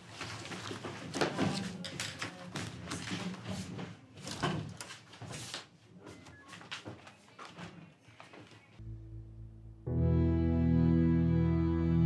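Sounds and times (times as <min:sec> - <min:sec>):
papers and folders handled: 0:00.0 - 0:08.6.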